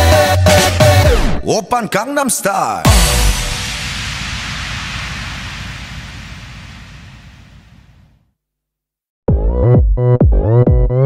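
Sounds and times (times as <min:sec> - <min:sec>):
white noise effect: 0:02.9 - 0:08.3.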